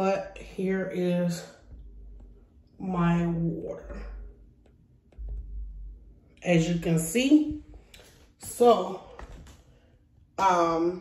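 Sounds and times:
low rumble: 0:00.0 - 0:09.4.

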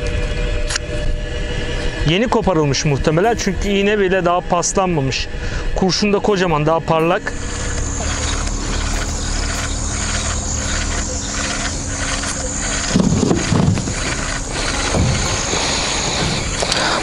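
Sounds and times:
electric motor hum: 0:06.8 - 0:17.0
low knocks: 0:13.0 - 0:17.0.

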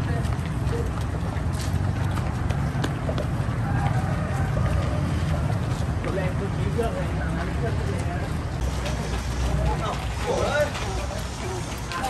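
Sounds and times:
running footsteps on concrete: 0:00.0 - 0:12.0.

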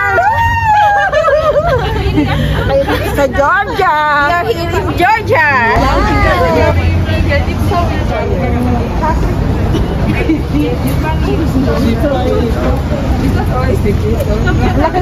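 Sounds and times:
people chattering excitedly: 0:00.0 - 0:15.0.

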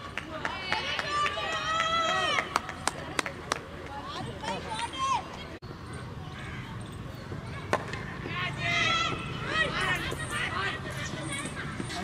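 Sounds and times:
people shouting: 0:08.2 - 0:11.5.

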